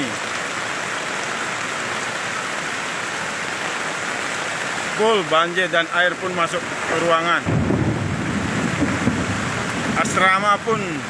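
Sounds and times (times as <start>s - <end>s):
fast-flowing floodwater: 0.0s - 11.0s
heavy rain: 0.0s - 11.0s.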